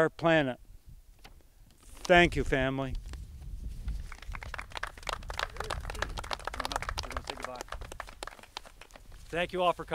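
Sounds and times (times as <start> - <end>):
small audience applauding: 4.0 - 9.2.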